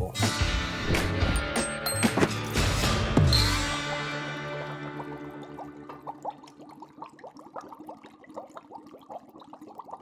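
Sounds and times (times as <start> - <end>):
bubbling liquid blips: 4.4 - 10.0.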